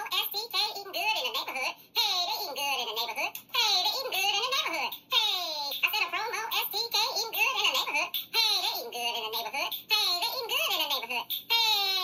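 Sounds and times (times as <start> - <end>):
high-pitched woman's voice: 0.0 - 12.0.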